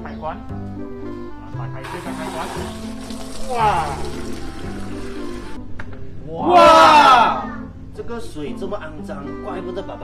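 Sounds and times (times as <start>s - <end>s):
background music: 0.0s - 10.0s
water running into a plastic bucket: 1.8s - 5.6s.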